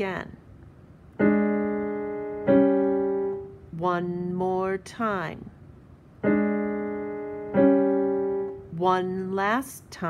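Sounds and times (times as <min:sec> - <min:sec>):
piano chords: 0:01.1 - 0:03.9, 0:06.2 - 0:09.1.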